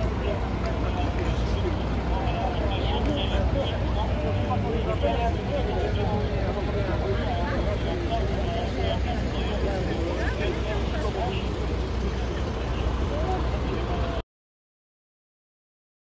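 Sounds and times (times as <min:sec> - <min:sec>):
crowd chatting: 0:00.0 - 0:14.2
steady low rumble: 0:00.0 - 0:14.2.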